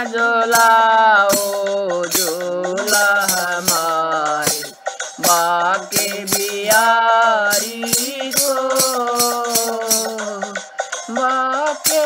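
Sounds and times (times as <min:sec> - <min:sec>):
person singing long notes: 0:00.0 - 0:12.0
steady drum beat: 0:00.0 - 0:12.0.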